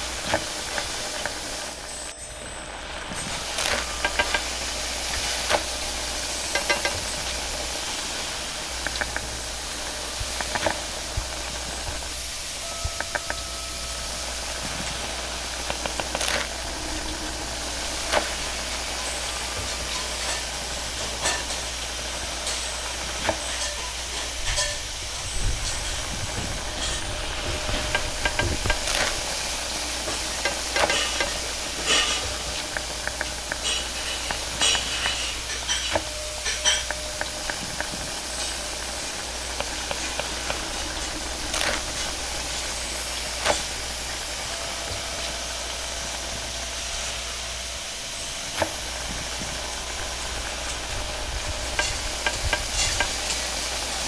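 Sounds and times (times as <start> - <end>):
gas burner low rumble: 0.0 - 54.0
noodles sizzling in a wok: 0.0 - 54.0.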